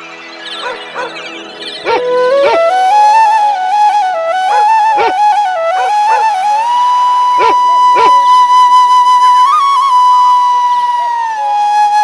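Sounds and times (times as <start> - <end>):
flute holding long note: 1.8 - 12.0.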